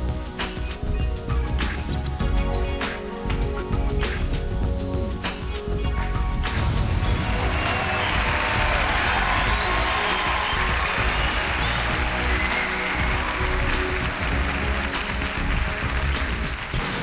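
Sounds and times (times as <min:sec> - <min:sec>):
stage show music: 0:00.0 - 0:17.0
audience applauding: 0:06.7 - 0:17.0.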